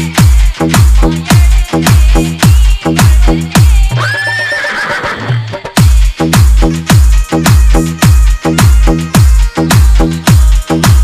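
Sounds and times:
heavy kick drum beat: 0.0 - 4.4, 5.4 - 11.0
horse whinny: 4.0 - 5.4.

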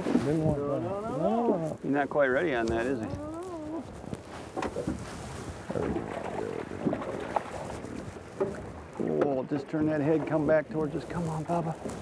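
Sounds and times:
knocks against boat: 8.4 - 10.4.

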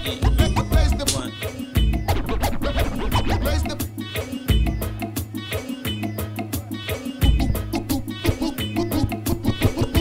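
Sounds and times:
vinyl record scratching: 0.0 - 3.9, 7.2 - 10.0
beat with heavy bass: 0.0 - 5.4, 6.1 - 10.0.

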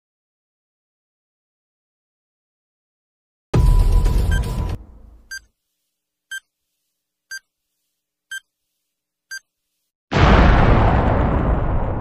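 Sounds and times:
countdown timer beeping: 3.6 - 5.5.

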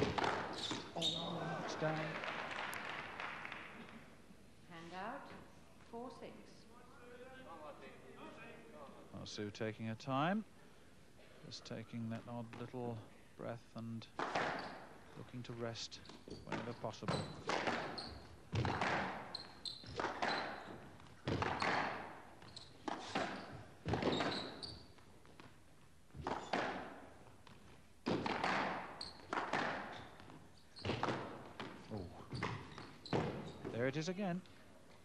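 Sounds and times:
squash ball hitting rackets and walls: 0.0 - 1.2, 14.2 - 14.9, 16.4 - 24.7, 26.1 - 33.8.

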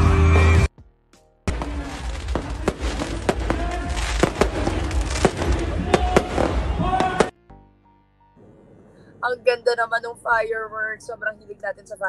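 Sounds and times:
fireworks bangs and crackles: 1.5 - 7.4.

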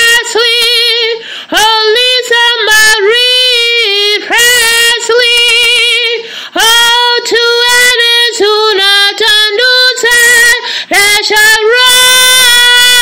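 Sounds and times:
woman singing unaccompanied: 0.0 - 13.0.

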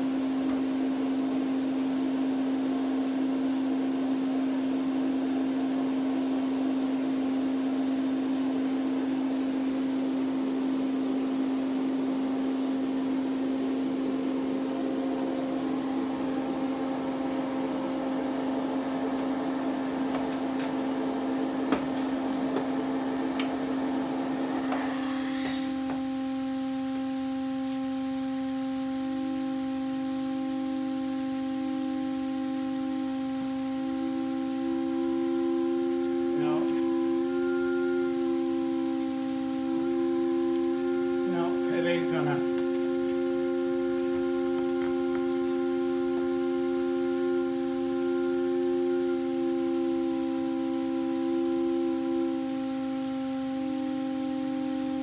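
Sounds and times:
higher wavering organ pipe note: 0.0 - 55.0
low organ pipe note: 11.7 - 28.0, 33.6 - 55.0
breathy hiss: 22.2 - 26.1.

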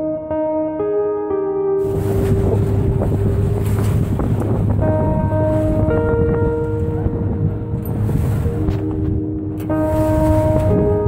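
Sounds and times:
soft keyboard music: 0.0 - 11.0
waves rushing past a boat: 1.8 - 11.0
wind buffeting microphone: 1.8 - 11.0.

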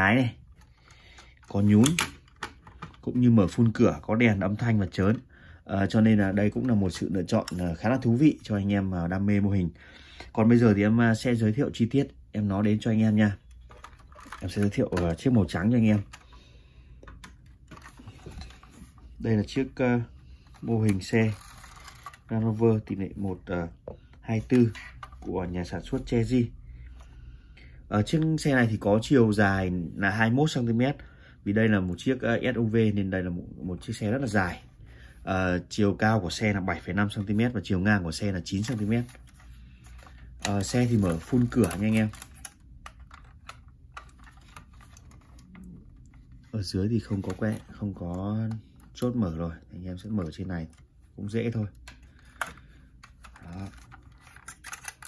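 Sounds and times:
plastic toy car parts clicking: 51.8 - 55.0.

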